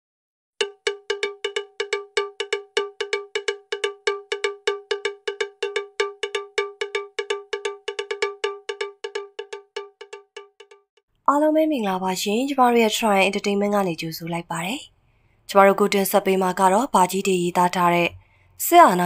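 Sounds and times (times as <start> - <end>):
rapid cowbell-like metallic strikes: 0.6 - 10.9.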